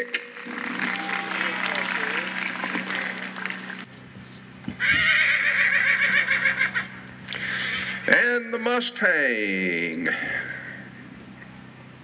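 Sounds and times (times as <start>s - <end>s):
horse whinnying: 4.8s - 7.0s.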